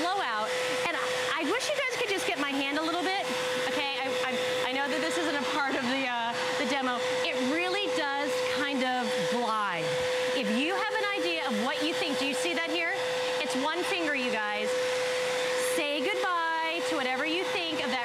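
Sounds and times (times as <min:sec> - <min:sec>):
vacuum cleaner motor whine: 0:00.0 - 0:18.0.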